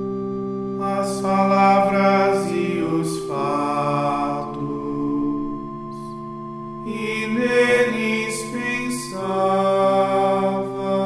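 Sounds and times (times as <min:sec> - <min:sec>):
person singing plainchant: 0:00.8 - 0:11.0.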